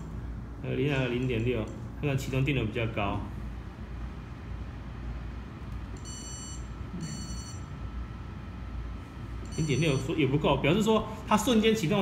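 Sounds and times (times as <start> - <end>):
low room hum: 0.0 - 12.0
high-pitched electronic beeps: 6.0 - 7.7.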